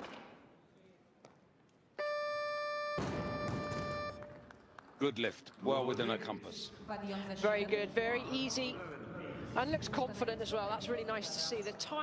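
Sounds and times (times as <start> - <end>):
electronic buzzer tone: 2.0 - 4.2.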